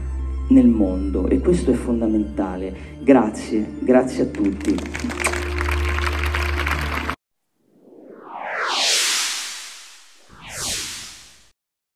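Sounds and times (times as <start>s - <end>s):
background music: 0.0s - 7.2s
audience applauding: 4.3s - 7.2s
faint rising whoosh: 7.6s - 11.6s.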